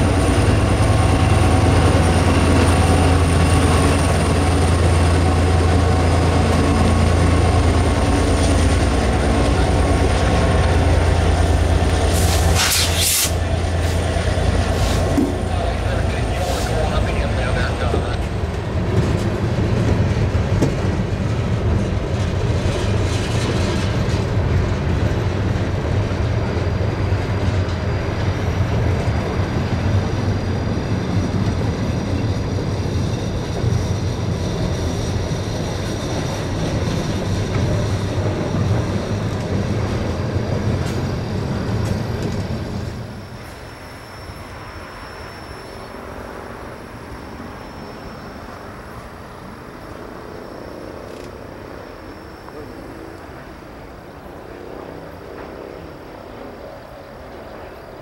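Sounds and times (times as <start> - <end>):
freight train wheels rumbling: 0.0 - 58.0
faint high squeal: 42.6 - 53.9.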